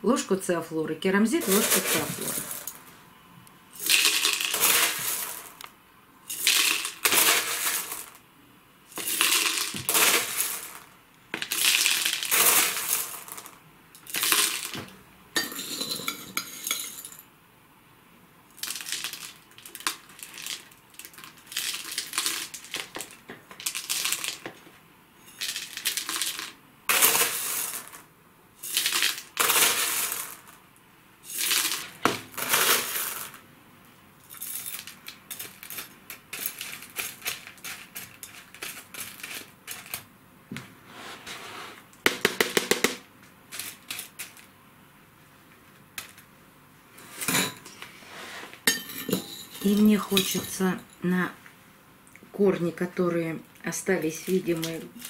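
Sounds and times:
small stones rattling into pot: 0:01.4 - 0:02.8, 0:03.8 - 0:05.6, 0:06.3 - 0:08.2, 0:08.9 - 0:14.9, 0:18.6 - 0:24.6, 0:25.3 - 0:30.6, 0:31.3 - 0:33.4, 0:34.2 - 0:40.1, 0:42.1 - 0:44.5, 0:53.7 - 0:55.0
metal spoon clinking: 0:15.4 - 0:17.2, 0:48.7 - 0:51.0.

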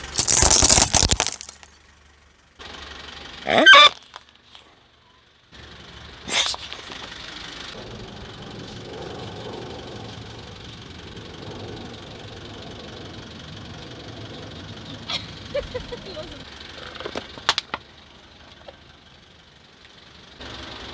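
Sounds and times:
car engine running: 0:00.0 - 0:20.9.

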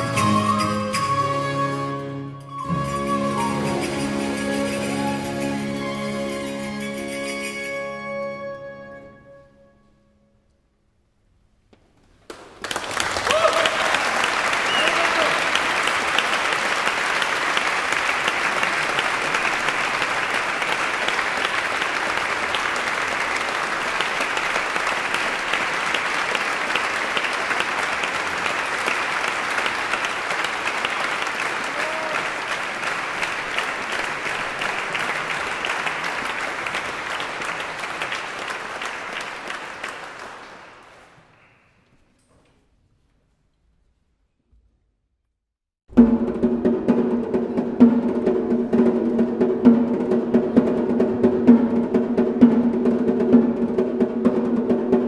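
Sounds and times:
audience applauding: 0:12.2 - 0:41.6.

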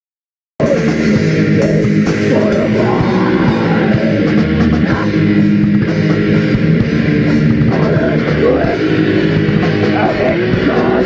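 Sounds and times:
metal band playing: 0:00.6 - 0:11.0.

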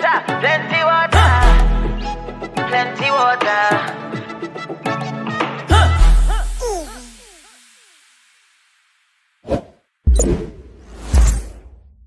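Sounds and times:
whoosh sound effect: 0:09.4 - 0:11.8.

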